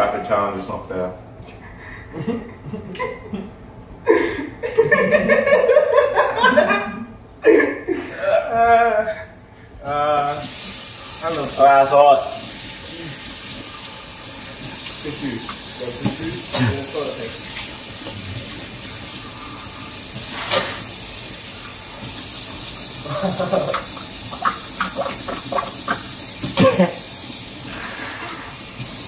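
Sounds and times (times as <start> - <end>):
kitchen tap running into sink: 10.2 - 29.0.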